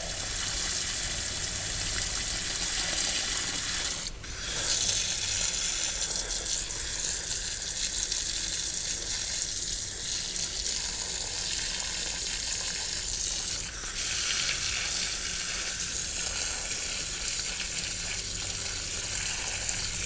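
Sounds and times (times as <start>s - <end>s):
garden hose spraying water: 0.0s - 20.0s.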